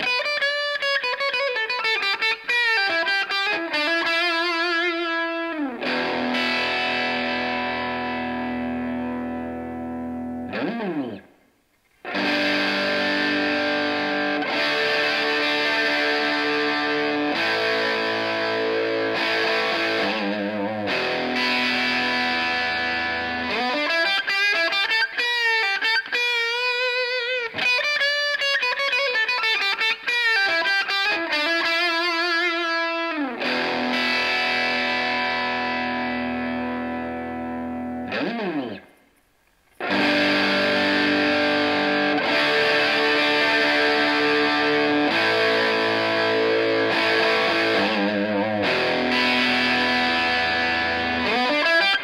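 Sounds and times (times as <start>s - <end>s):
overdriven electric guitar: 0.0s - 52.0s.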